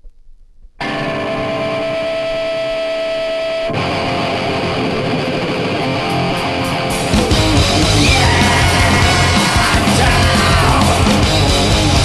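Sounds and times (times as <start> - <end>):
distorted electric guitar chord: 0.8 - 12.0.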